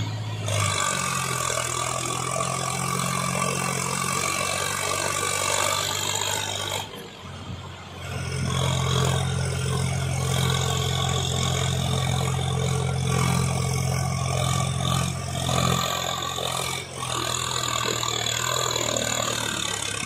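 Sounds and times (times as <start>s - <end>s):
tractor diesel engine under load: 0.0s - 20.0s.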